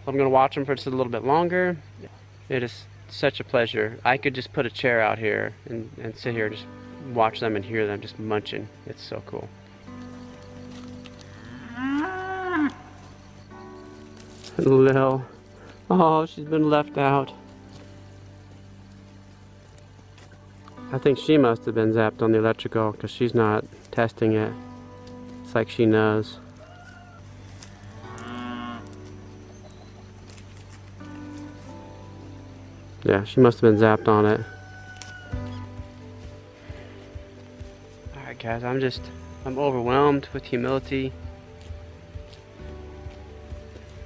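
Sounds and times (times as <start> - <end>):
cow mooing: 11.2 - 13.0, 26.5 - 29.1.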